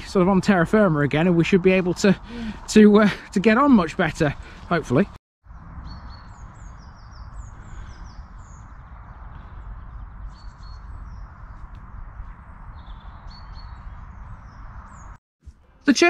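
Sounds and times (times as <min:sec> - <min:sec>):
small birds chirping: 0:00.0 - 0:15.2.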